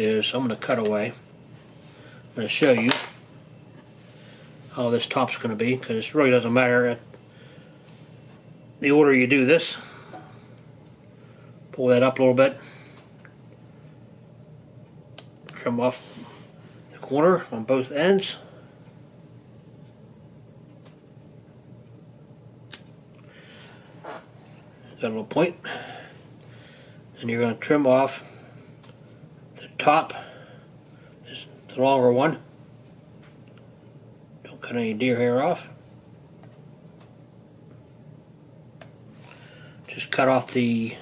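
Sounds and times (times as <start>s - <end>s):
faint steady low hum: 0.0s - 41.0s.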